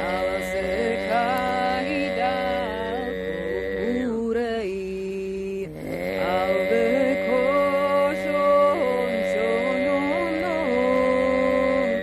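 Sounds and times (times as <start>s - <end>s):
steady low drone: 0.0s - 12.0s
woman singing: 0.0s - 12.0s.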